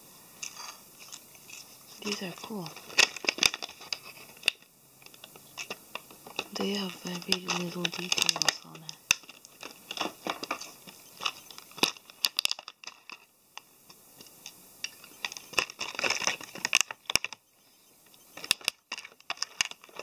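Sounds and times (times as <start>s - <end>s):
plastic packaging crinkling: 0.4s - 17.4s, 18.3s - 20.0s.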